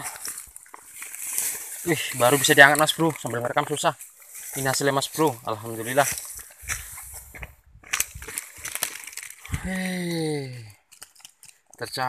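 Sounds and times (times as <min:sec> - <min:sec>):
rustling of dry leaves: 0:00.0 - 0:12.0.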